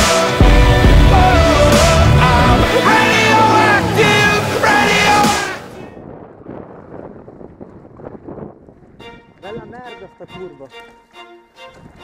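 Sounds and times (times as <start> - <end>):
rock music: 0.0 - 5.8
wind buffeting microphone: 5.8 - 10.5, 11.7 - 12.0.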